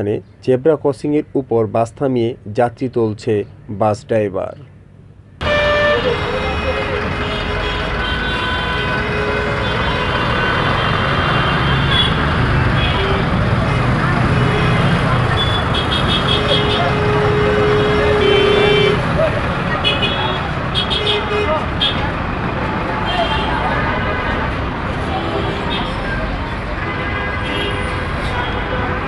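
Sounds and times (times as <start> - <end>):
short high horn toots: 5.4 - 6.5
vehicle engines running: 5.4 - 26.9.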